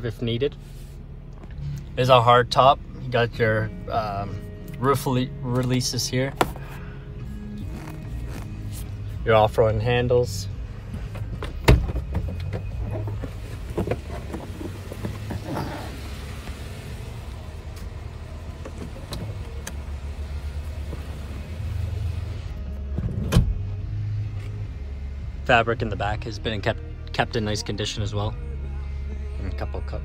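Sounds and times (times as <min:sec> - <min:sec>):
vehicle cabin rumble: 0:00.0 - 0:30.0
knocks and rustling: 0:10.9 - 0:16.5.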